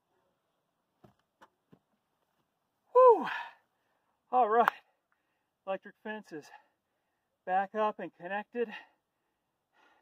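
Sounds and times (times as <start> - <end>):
man sighing loudly: 2.9 - 3.6.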